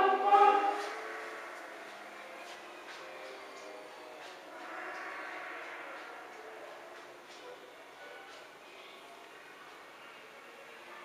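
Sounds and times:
low indoor murmur: 0:00.0 - 0:11.0.

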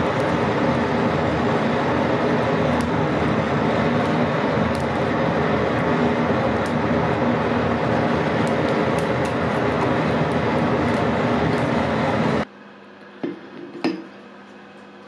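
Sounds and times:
forge fire roaring: 0:00.0 - 0:12.5
low hum: 0:00.0 - 0:13.5.

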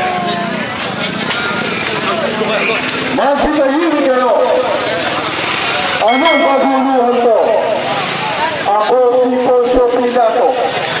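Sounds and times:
people talking in a crowd: 0:00.0 - 0:11.0.

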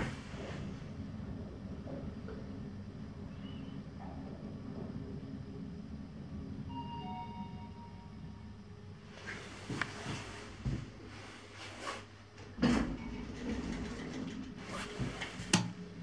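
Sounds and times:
elevator ride hum: 0:00.0 - 0:16.0
elevator arrival chime: 0:06.6 - 0:08.8, 0:12.9 - 0:14.3.

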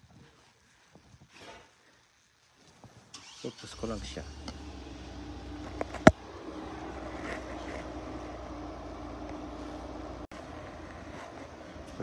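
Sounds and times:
vehicle running hum: 0:03.8 - 0:12.0.

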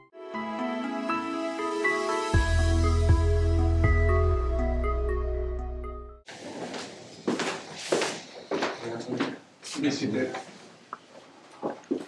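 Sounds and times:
voices in a small room: 0:07.9 - 0:10.8.

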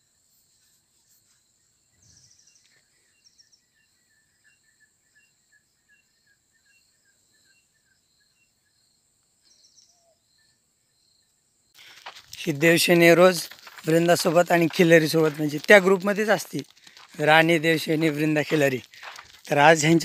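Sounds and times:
insects buzzing and chirping: 0:00.0 - 0:20.0.

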